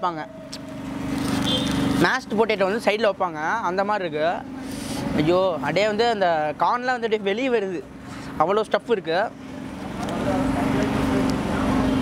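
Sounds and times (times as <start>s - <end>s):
man speaking: 2.0s - 9.4s.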